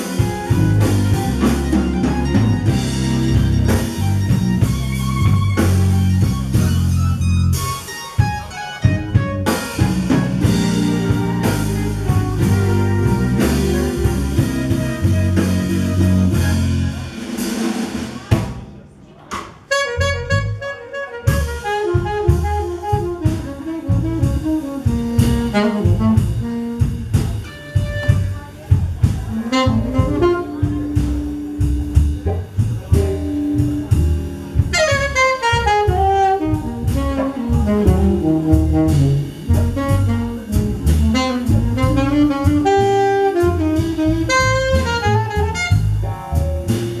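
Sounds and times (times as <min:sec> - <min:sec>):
saxophone playing: 0:00.0 - 0:17.2, 0:19.7 - 0:28.6, 0:29.3 - 0:31.9, 0:34.6 - 0:46.8
keyboards: 0:00.0 - 0:17.7, 0:21.3 - 0:47.0
electric bass: 0:00.0 - 0:18.4, 0:19.8 - 0:47.0
drums: 0:00.0 - 0:47.0.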